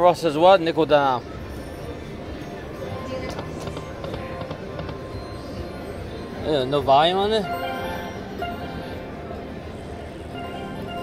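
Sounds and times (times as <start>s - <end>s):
murmur of voices: 0.0s - 11.0s
slot machine music and jingles: 2.8s - 9.5s.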